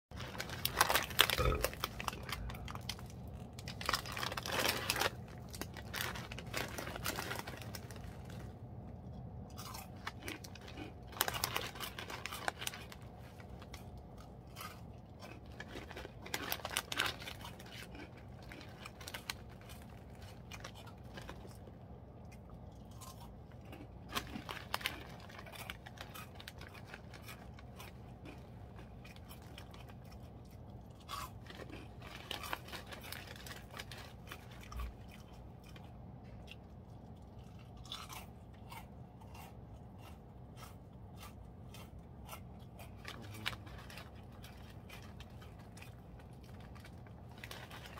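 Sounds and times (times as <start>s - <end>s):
crunchy chips being chewed: 0.1s - 47.9s.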